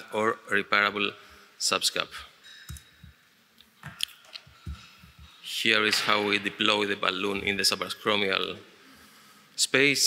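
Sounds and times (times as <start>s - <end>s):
man speaking: 0.0s - 2.4s, 4.7s - 8.7s, 9.6s - 10.0s.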